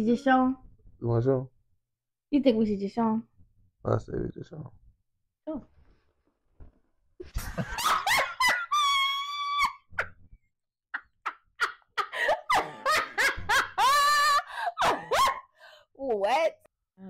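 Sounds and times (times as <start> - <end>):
man and woman laughing: 7.2 - 10.1, 11.0 - 15.4.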